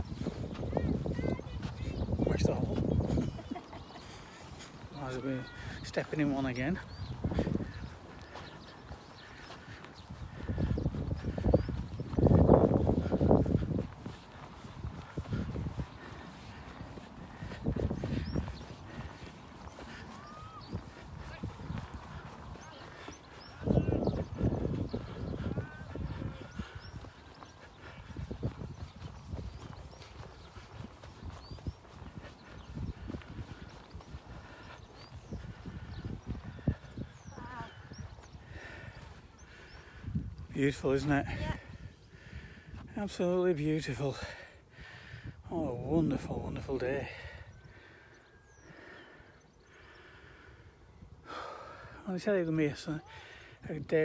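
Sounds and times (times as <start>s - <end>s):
wind rumbling on microphone: 0.0s - 52.0s
footsteps in loose sand: 0.0s - 54.0s.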